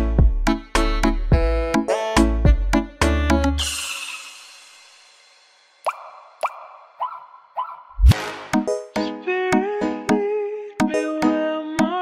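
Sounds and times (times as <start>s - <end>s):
electronic siren beat: 5.8s - 8.1s.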